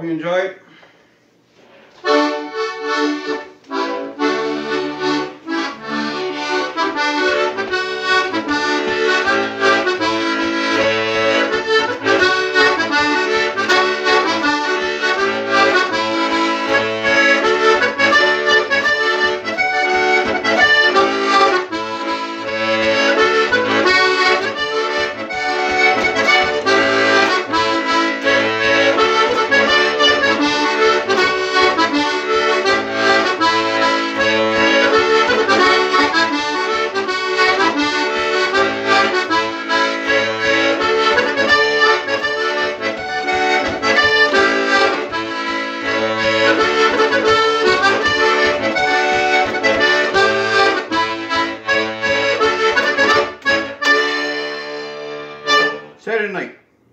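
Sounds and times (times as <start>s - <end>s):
button accordion playing a jig: 1.9s - 56.0s.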